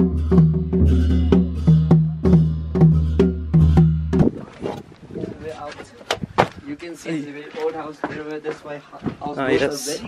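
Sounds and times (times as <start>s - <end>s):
drum strike: 0.0s - 4.4s.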